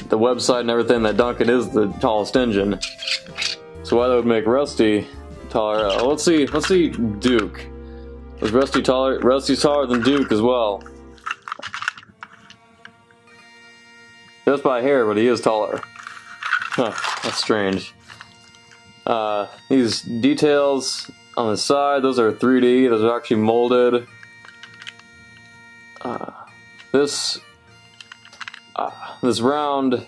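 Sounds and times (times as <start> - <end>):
soft background music: 0.0 - 30.0
plastic toys clicking: 5.7 - 7.5, 11.2 - 12.6, 15.8 - 17.5, 24.1 - 25.1, 27.9 - 28.8.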